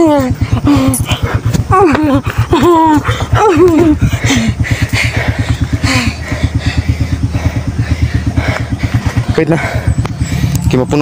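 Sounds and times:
small engine idling: 0.0 - 11.0.

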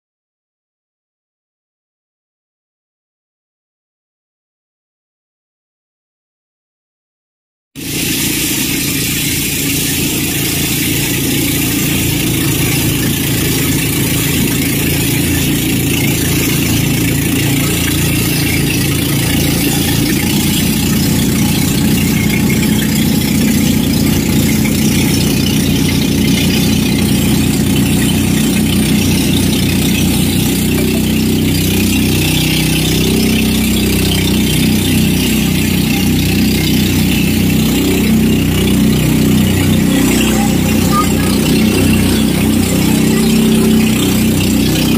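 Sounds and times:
boat engine running: 7.8 - 44.9.

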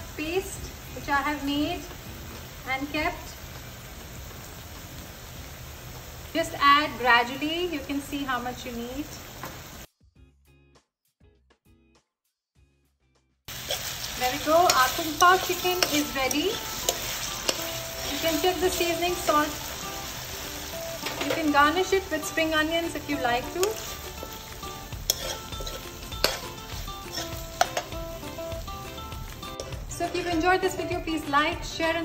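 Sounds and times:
faint background music: 0.0 - 3.6, 13.6 - 32.0
food sizzling in a wok: 0.0 - 9.9, 13.5 - 32.0
metal spoon stirring: 13.6 - 28.4.

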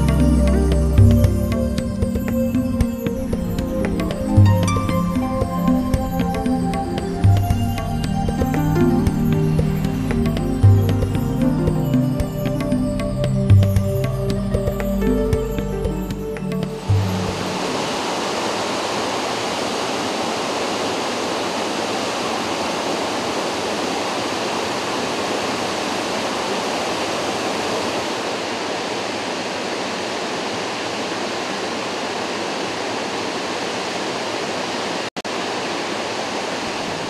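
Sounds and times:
waterfall rushing: 0.0 - 37.0.

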